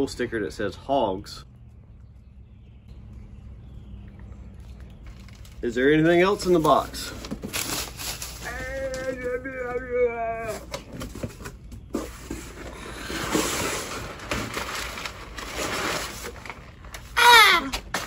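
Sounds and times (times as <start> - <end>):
packing paper rustling: 5.0 - 18.0.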